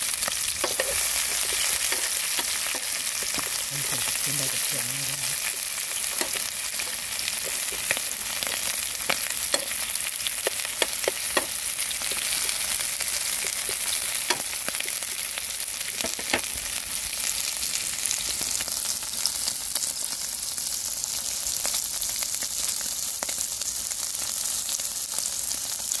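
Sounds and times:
meat sizzling in a frying pan: 0.0s - 26.0s
sharp pops and clicks: 5.5s - 15.3s.

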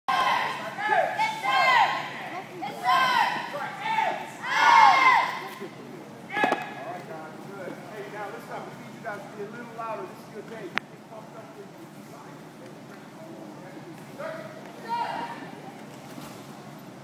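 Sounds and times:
children shouting: 0.1s - 5.4s.

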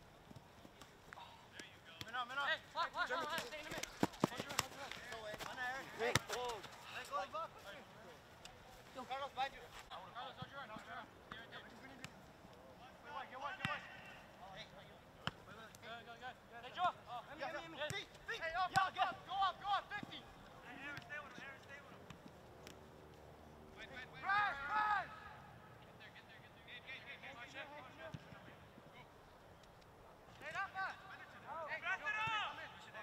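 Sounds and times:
players shouting: 23.9s - 25.6s.

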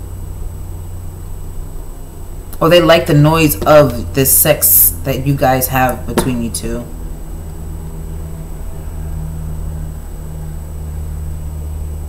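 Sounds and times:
low room hum with hiss: 0.0s - 12.0s.

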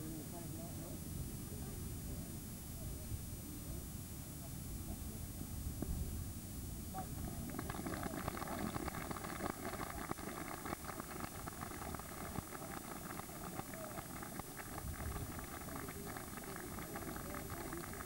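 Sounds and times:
rumbling hiss: 4.4s - 18.0s
faint crackles: 7.0s - 18.0s.

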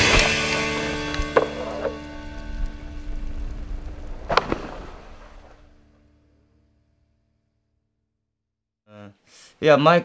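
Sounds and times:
sharp hit: 0.0s - 6.1s
background music with sustained tones: 0.0s - 7.1s.

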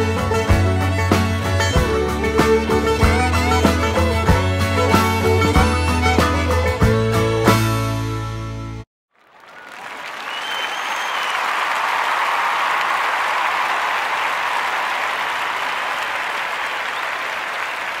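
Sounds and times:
fiddle and guitar tune: 0.0s - 8.8s
applause: 9.1s - 18.0s
short whistle: 9.5s - 11.6s.

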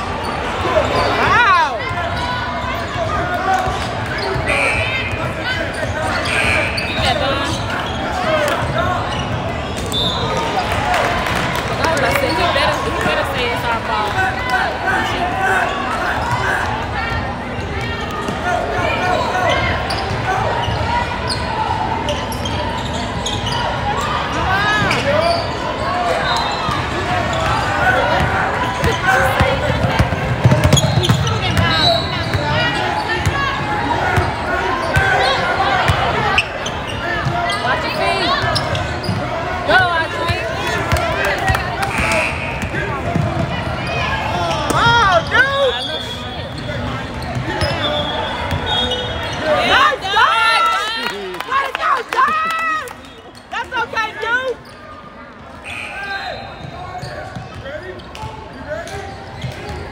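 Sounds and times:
spectators chattering and calling: 0.0s - 59.9s.

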